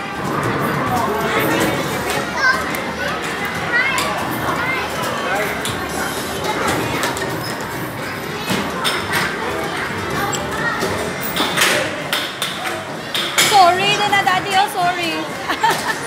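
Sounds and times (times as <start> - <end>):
background voices and chatter: 0.0 - 16.0
scattered clicks and knocks: 5.0 - 14.7.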